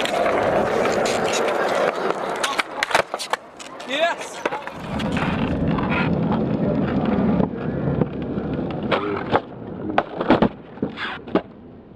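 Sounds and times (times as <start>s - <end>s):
skateboard clacking on ground: 0.0s - 11.6s
skateboard wheels rolling on concrete: 0.0s - 11.9s.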